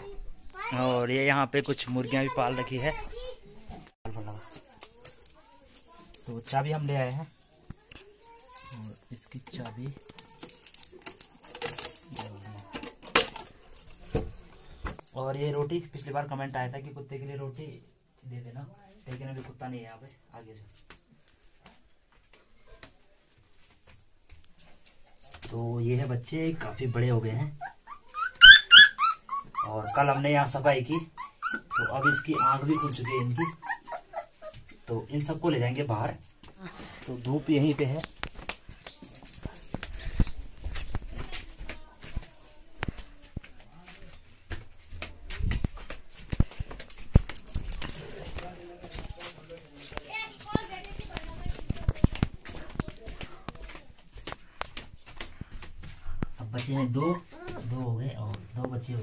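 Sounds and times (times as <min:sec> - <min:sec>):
keys and padlock rattling: 0:08.5 - 0:15.2, 0:38.9 - 0:40.9, 0:46.6 - 0:48.5.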